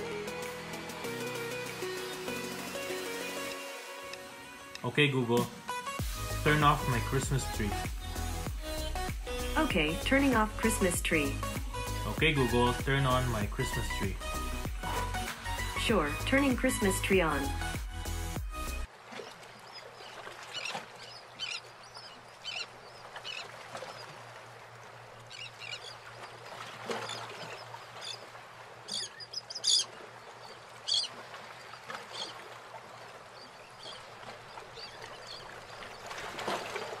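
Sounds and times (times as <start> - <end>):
short bird calls: 28.9 - 30.0, 30.8 - 31.2.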